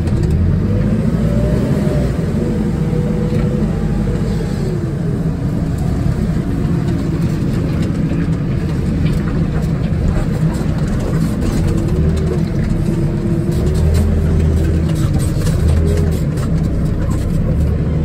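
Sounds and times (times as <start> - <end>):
diesel engine from inside cab: 0.0 - 18.0
cab rattles: 5.5 - 18.0.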